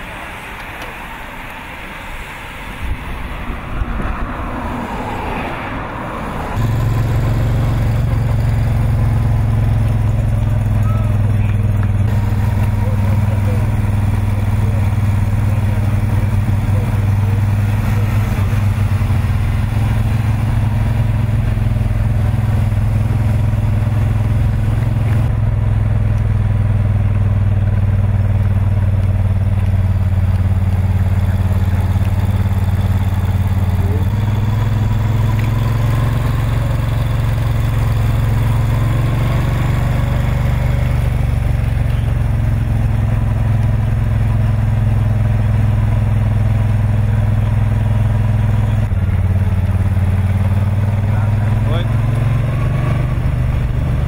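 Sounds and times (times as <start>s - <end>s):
road and wind noise: 0.0s - 54.0s
vehicle engine running steadily: 0.0s - 54.0s.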